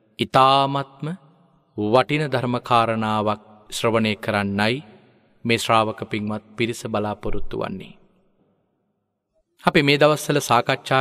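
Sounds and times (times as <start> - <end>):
man chanting: 0.0 - 1.2, 1.8 - 8.0.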